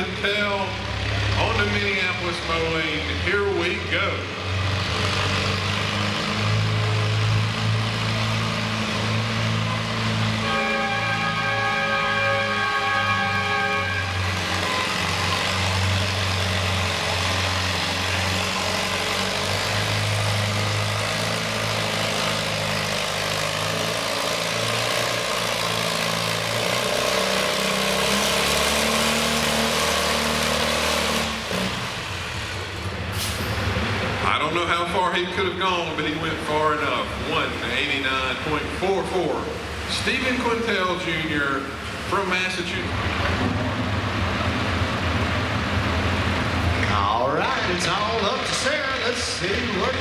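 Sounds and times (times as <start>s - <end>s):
tractor engine under full load: 0.0s - 50.0s.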